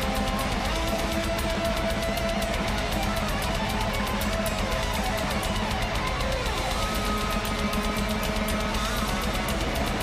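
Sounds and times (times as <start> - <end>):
distorted electric guitars: 0.0 - 10.0
fast driving drums: 0.0 - 10.0.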